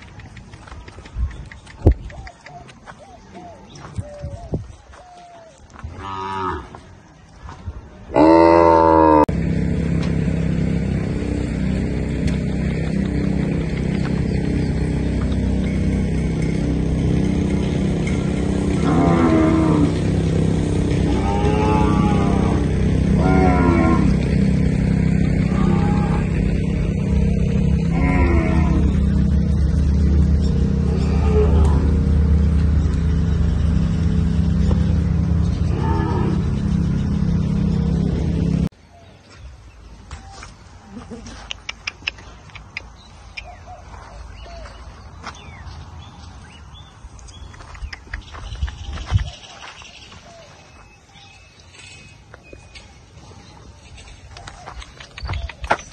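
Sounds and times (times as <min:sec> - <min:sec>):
cattle mooing: 0:08.2 - 0:09.3, 0:16.3 - 0:38.7.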